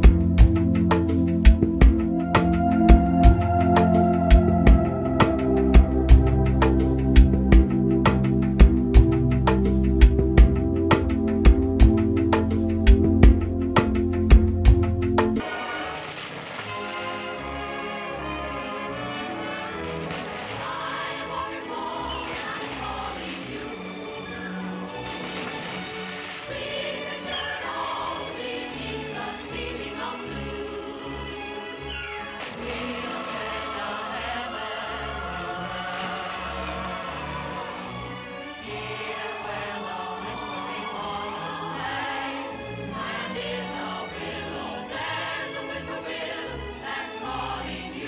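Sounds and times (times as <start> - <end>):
choir singing held notes: 0.0 - 15.8, 17.2 - 25.1, 26.4 - 31.3, 32.4 - 48.0.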